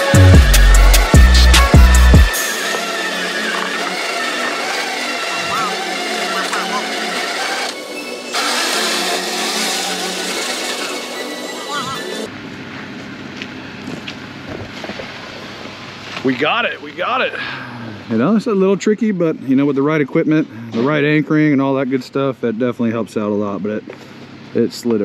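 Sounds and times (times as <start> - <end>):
electric winch pulling: 0.0 - 12.3
vehicle engine running: 0.0 - 25.0.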